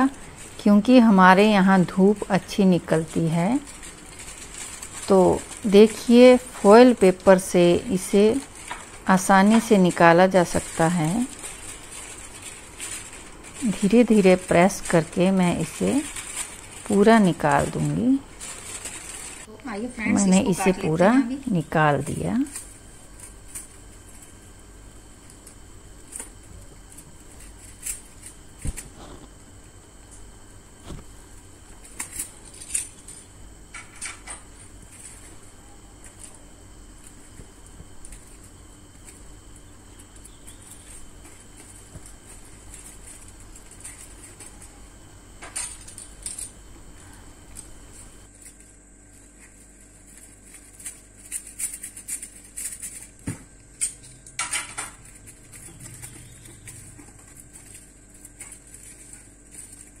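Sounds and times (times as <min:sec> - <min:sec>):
faint hum: 0:00.0 - 1:00.0
foil crinkling: 0:00.0 - 1:00.0
knife scraping on foil: 0:03.2 - 0:09.1, 0:09.9 - 0:19.5, 0:48.0 - 1:00.0.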